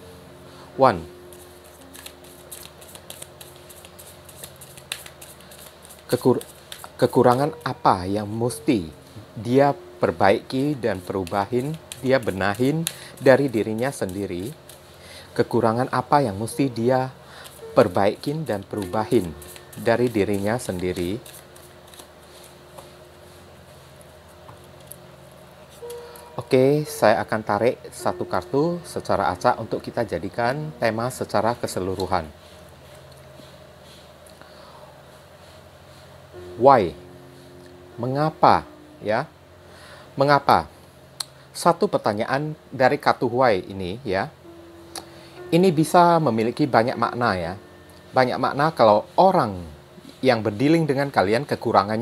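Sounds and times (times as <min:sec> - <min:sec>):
cards clicking and snapping: 0:01.3 - 0:07.0, 0:11.2 - 0:14.8, 0:21.0 - 0:22.1.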